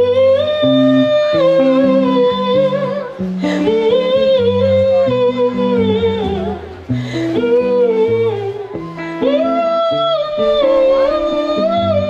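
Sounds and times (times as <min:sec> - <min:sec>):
live band with guitar: 0:00.0 - 0:12.0.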